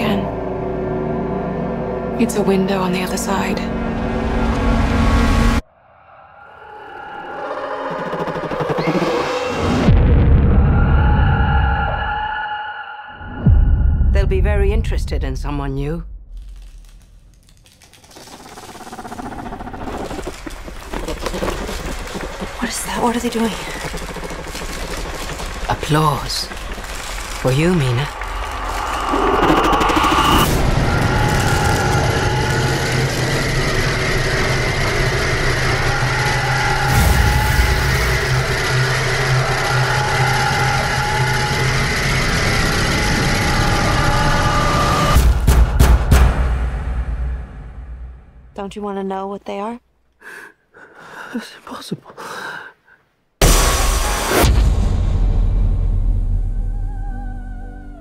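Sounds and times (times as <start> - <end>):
low drone: 0.0 - 14.1, 16.2 - 48.5, 53.4 - 58.0
rapid dense clicking: 16.9 - 27.4.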